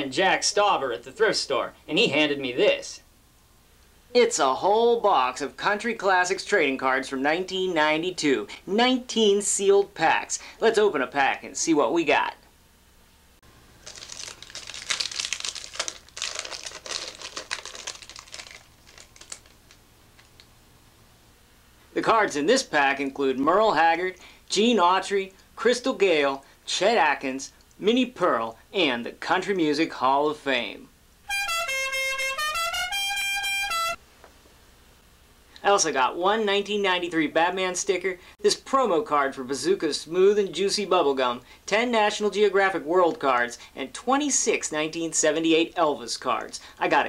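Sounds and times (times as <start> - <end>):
plastic wrapper crinkling: 13.7 - 20.5
buzzy horn-like jingle: 31.3 - 34.0.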